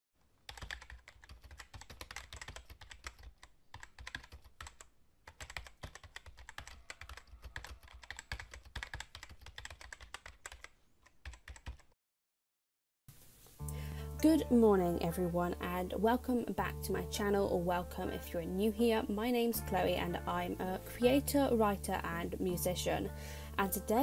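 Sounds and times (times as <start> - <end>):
rapid keyboard typing: 0.4 - 12.0.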